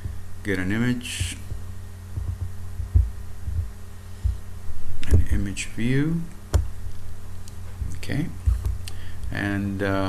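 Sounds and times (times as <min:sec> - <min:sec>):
soft dull low thumps: 0:00.0 - 0:09.3
low electrical hum: 0:00.0 - 0:10.0.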